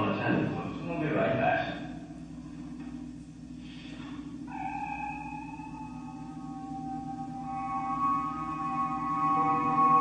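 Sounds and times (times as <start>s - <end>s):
low hum: 0.0s - 10.0s
sustained eerie tones: 3.4s - 10.0s.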